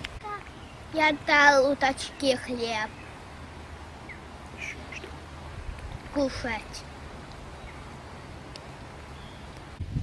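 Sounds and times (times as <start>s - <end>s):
faint duck calls: 4.1s - 5.2s.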